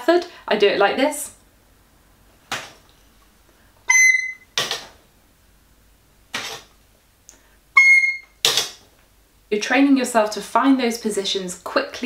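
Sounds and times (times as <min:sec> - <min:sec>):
recorder high notes: 0:03.8 - 0:04.6, 0:07.7 - 0:08.4.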